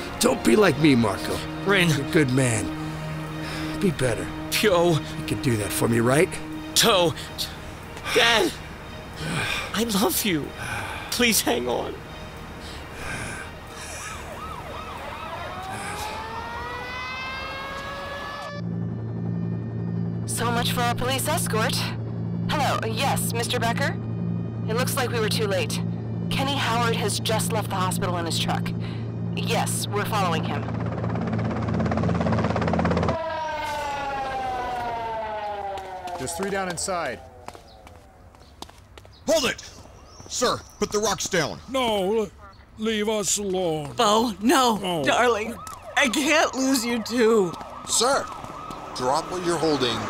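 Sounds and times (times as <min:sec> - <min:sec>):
emergency vehicle siren: 0:00.0 - 0:38.8, 0:44.0 - 0:50.0
steady low hum: 0:18.6 - 0:33.2.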